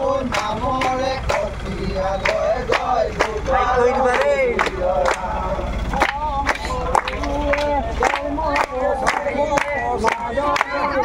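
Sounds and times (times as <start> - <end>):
group singing a devotional chant: 0.0 - 11.0
low steady rumble: 0.0 - 11.0
hand claps: 0.3 - 1.5, 2.2 - 3.4, 4.1 - 5.3, 5.9 - 10.9.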